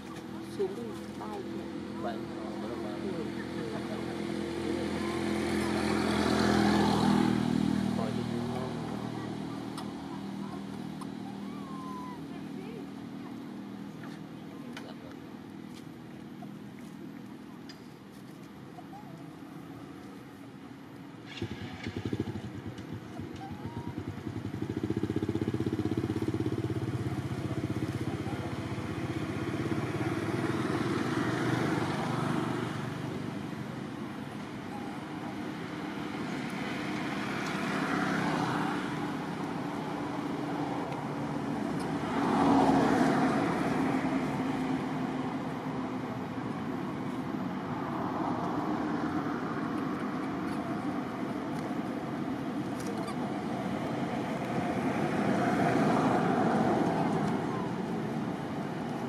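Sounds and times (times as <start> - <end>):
vehicle engines passing: 0.0 - 59.0.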